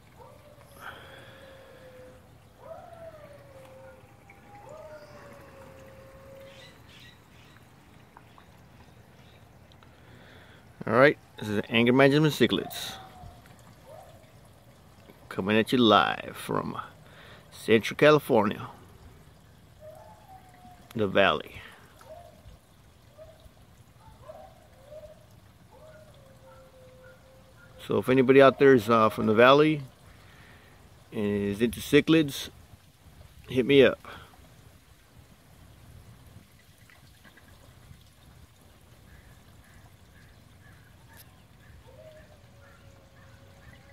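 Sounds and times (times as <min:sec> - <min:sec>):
water trickling in a pond: 0:00.0 - 0:43.9.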